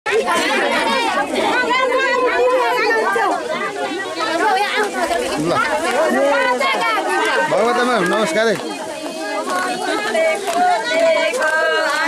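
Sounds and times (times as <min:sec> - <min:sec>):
women talking over one another: 0:00.1 - 0:12.0.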